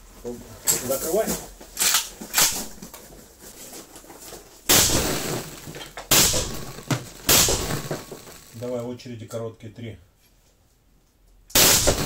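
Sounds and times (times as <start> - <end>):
suppressed rifle shots: 4.7 - 8.5, 11.6 - 12.0
gunshot echo in room: 4.7 - 8.6, 11.5 - 12.0.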